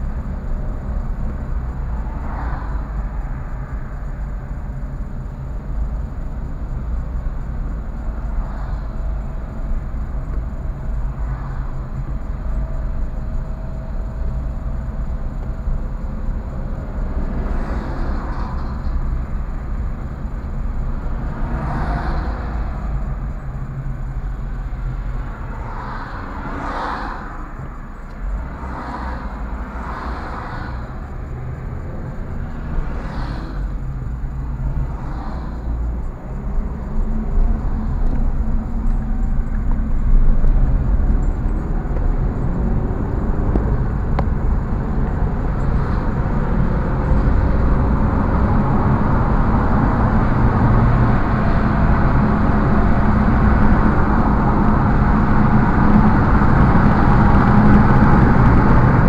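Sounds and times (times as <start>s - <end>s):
car cabin road rumble: 0.0s - 59.0s
rushing noise: 7.3s - 59.0s.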